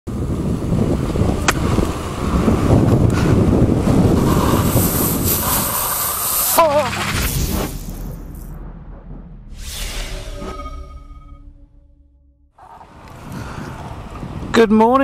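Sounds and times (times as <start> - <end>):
wind buffeting microphone: 0.1 - 6.4, 12.6 - 15.0
brief wavering tone: 9.6 - 12.4.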